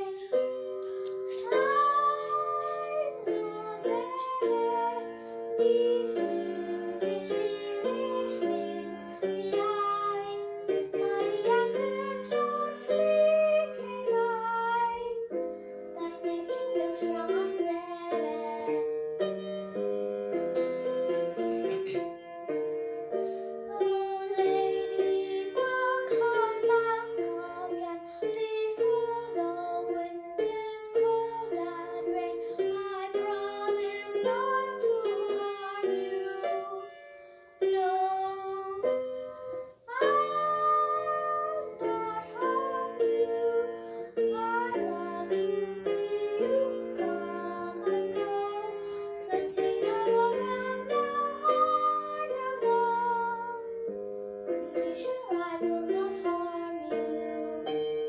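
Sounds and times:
girl singing: 0.0s - 58.0s.

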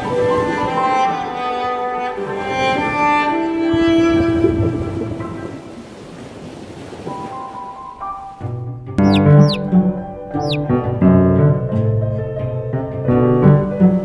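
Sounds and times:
surging water: 3.7s - 8.1s.

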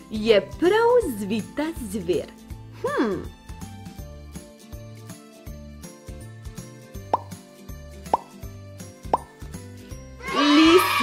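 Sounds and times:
light background music: 0.0s - 11.0s
cartoon plop rising in pitch: 7.1s - 7.4s, 8.1s - 8.3s, 9.1s - 9.4s.

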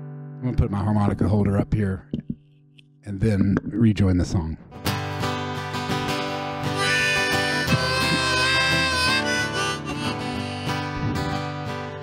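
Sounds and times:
strummed acoustic guitar: 4.7s - 12.0s
harmonica playing: 6.6s - 12.0s.

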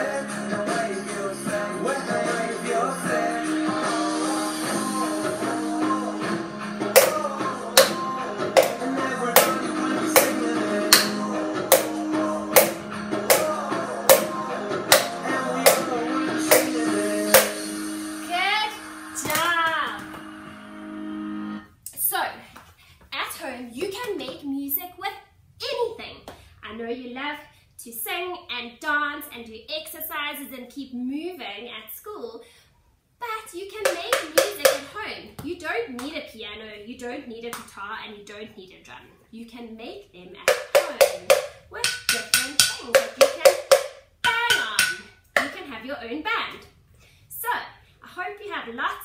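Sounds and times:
upbeat guitar music: 0.0s - 21.6s
spoon tapping plastic bowl: 7.0s - 7.2s, 7.8s - 8.8s, 12.6s - 13.5s, 33.9s - 34.8s, 40.5s - 45.5s.

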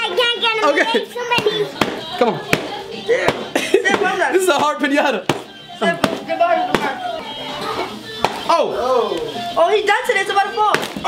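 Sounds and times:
children and adults talking: 0.0s - 11.0s
pinata being struck: 1.2s - 7.0s, 8.2s - 8.6s, 10.6s - 11.0s.

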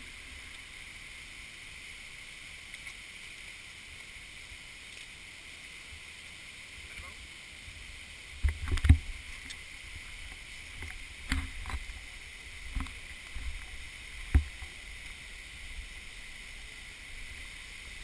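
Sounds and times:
high-pitched hiss: 0.0s - 18.0s.

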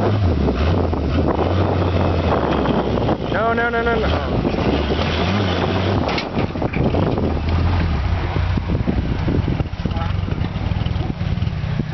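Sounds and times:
buggy engine at low revs: 0.0s - 11.9s.

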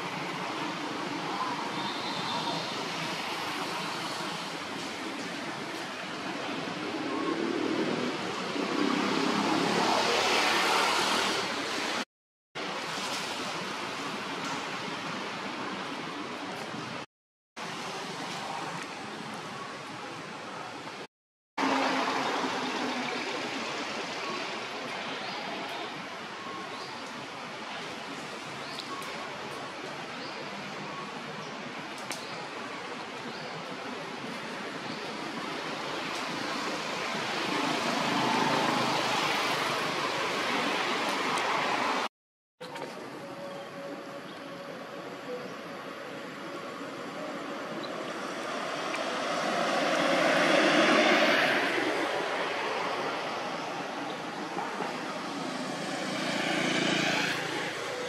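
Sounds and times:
outdoor rushing noise: 47.6s - 58.0s.

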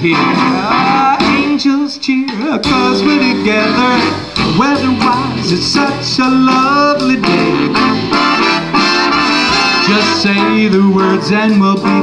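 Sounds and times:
drums: 0.0s - 12.0s
jazz big band playing swing: 0.0s - 12.0s.

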